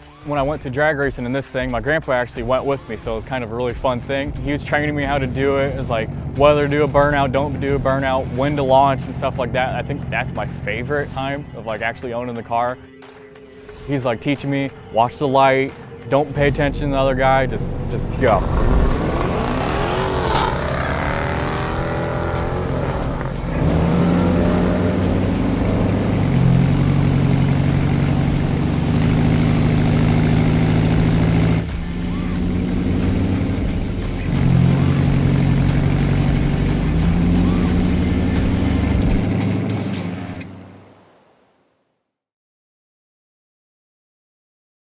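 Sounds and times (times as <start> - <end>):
car engine revving: 2.5 - 11.7, 16.1 - 41.3
music with stepping bass line: 20.5 - 40.1.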